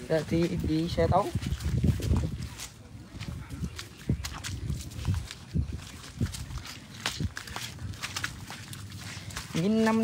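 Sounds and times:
footsteps through wet grass and mud: 0.0 - 10.0.

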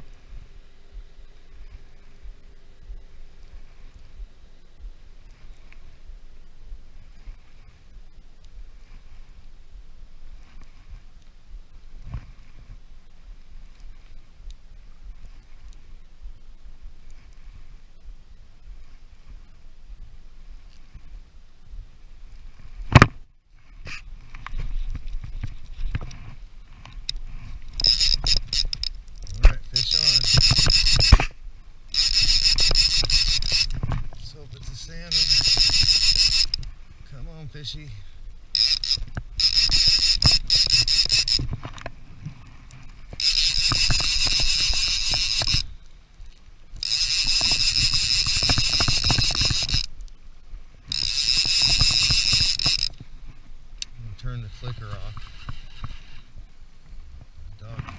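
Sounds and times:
low steady rumble: 0.0 - 40.5
fishing reel ratchet rasping: 27.0 - 31.3, 31.9 - 33.8, 34.7 - 36.7, 38.5 - 41.5, 43.1 - 45.7, 46.8 - 49.9, 50.9 - 53.0.

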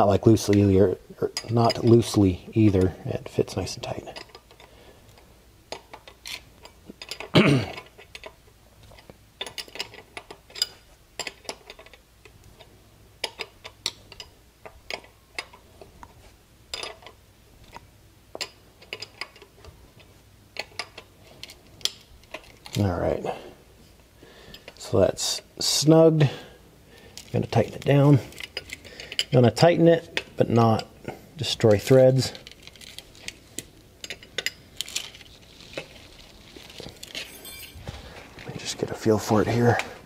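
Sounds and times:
metal clicks and clinks: 18.4 - 19.5, 37.0 - 37.9.

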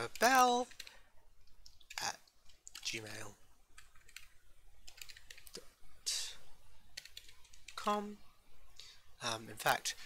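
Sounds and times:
keyboard typing: 0.0 - 5.6, 6.9 - 7.9.

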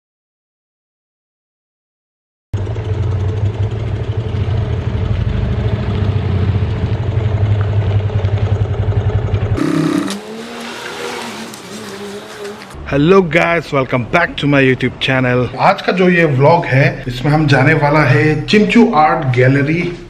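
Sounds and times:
motorcycle engine running: 2.6 - 10.4.

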